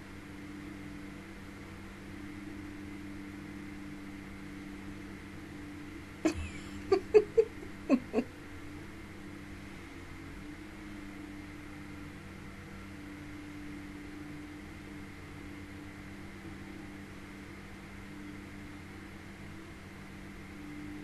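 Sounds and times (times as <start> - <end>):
room tone hum and hiss: 0.0 - 21.0.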